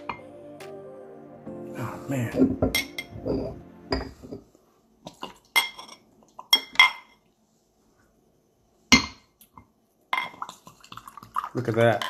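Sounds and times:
glass bottle and glass clinking: 2.4s - 4.4s, 5.6s - 6.0s.

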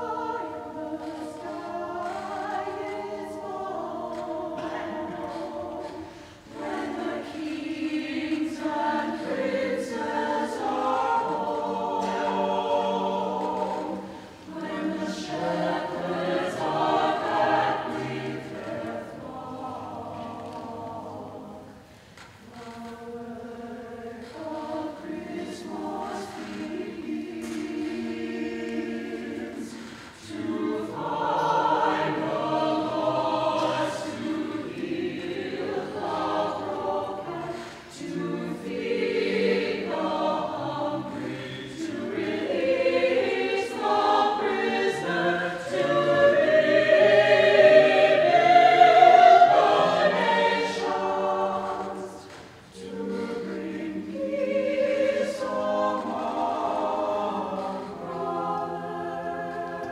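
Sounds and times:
chamber choir singing: 0.0s - 59.9s.

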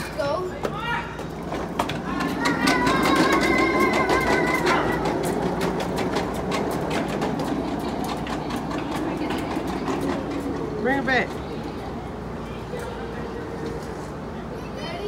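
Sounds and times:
plastic wheels rolling on concrete: 0.0s - 15.0s.

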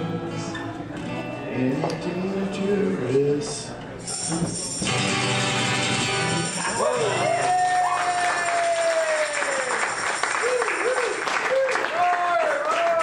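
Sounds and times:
audience applauding and whooping: 6.6s - 13.0s.

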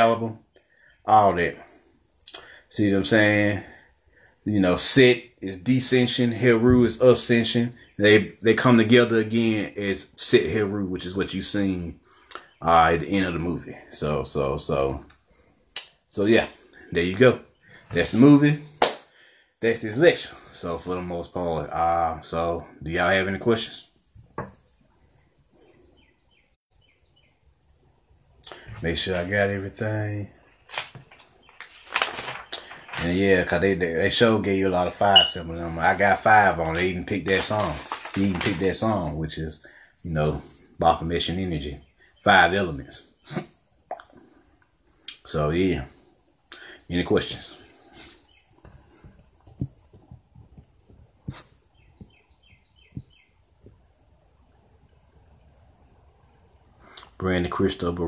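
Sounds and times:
high animal chirps: 35.2s - 35.4s.

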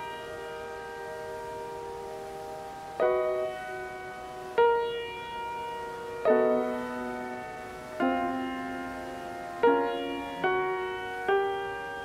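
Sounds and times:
piano chord sustained: 0.0s - 12.0s.

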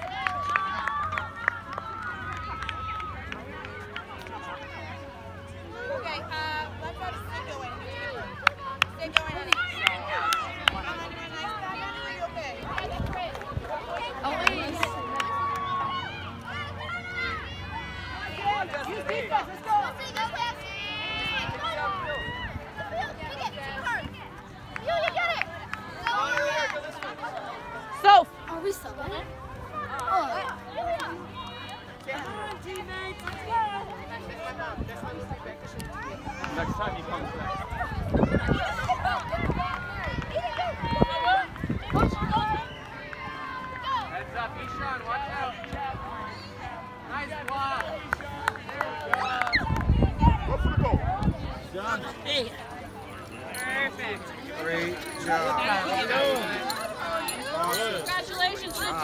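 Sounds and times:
crowd calling out and shouting: 0.0s - 59.0s.

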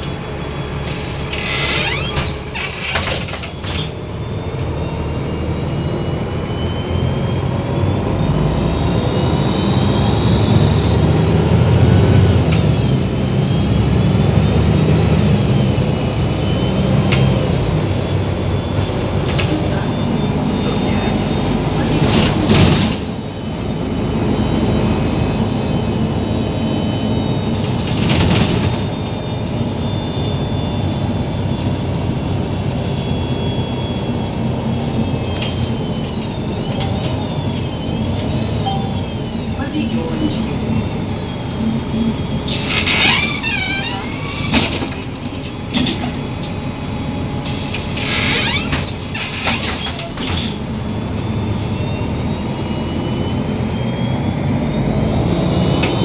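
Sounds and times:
bus engine and road drone: 0.0s - 56.0s.

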